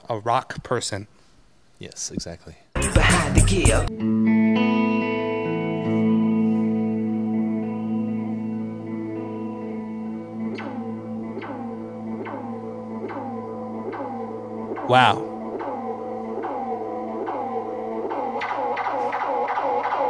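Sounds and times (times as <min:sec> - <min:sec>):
electric guitar chord ringing: 0:03.9 - 0:18.0
repeating plucked guitar figure: 0:09.2 - 0:19.2.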